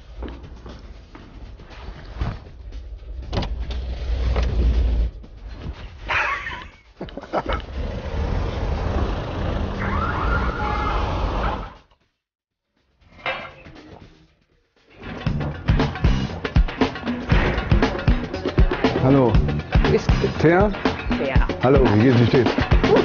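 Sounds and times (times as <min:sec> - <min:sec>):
rumble of road traffic: 0:07.8 - 0:11.6
wavering high siren tone: 0:09.8 - 0:11.6.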